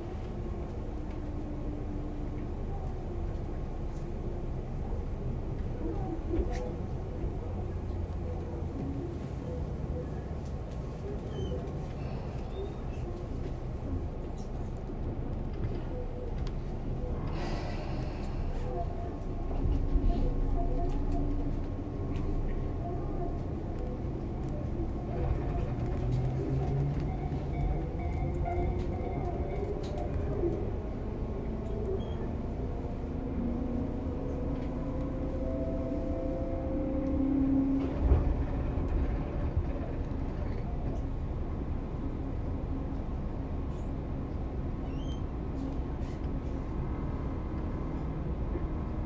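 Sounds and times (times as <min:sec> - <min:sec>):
train wheel and rail rumble: 0:00.0 - 0:49.0.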